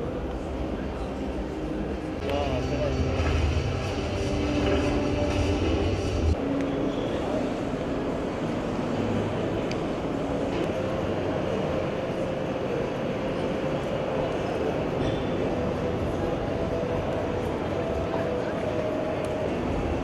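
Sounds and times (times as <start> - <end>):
din of busy exhibition hall: 0.0 - 20.0
heavy low rumble: 1.8 - 6.5.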